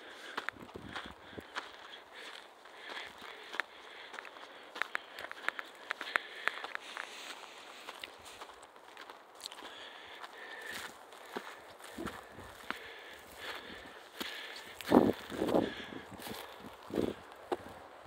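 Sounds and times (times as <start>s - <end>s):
footsteps on dry grass and twigs: 0.0s - 18.0s.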